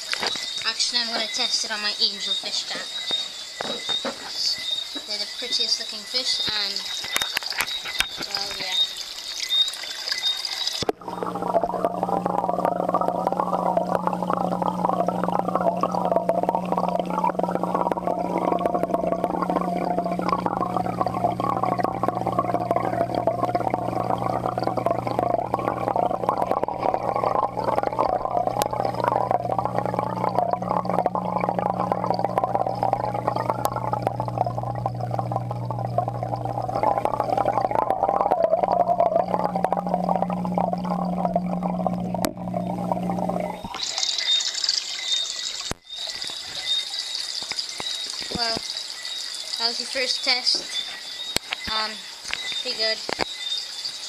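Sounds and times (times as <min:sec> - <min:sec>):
water gurgling: 0:00.0 - 0:54.0
water splashing and dripping: 0:00.0 - 0:54.0
underwater low hum: 0:10.8 - 0:45.9.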